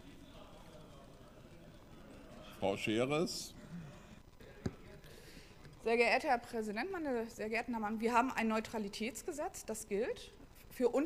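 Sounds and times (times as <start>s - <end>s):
faint indistinct voices: 0.0s - 6.0s.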